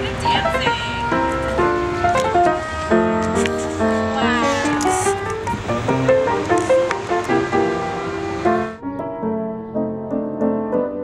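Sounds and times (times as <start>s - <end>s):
upright piano playing: 0.0s - 11.0s
high background hiss: 0.9s - 8.8s.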